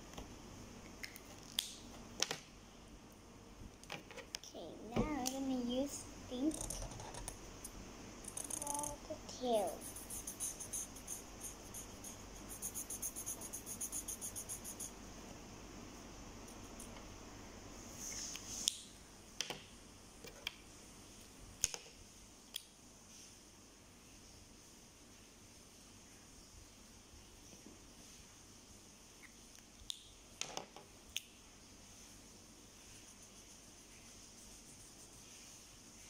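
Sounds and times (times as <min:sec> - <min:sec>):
child making vocal sounds: 0:04.5 - 0:06.7, 0:08.6 - 0:09.8
marker scribbling on paper: 0:08.6 - 0:14.9, 0:32.9 - 0:35.4.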